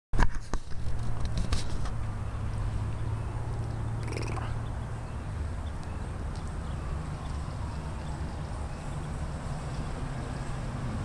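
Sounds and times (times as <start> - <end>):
low engine drone: 0.7 - 11.0.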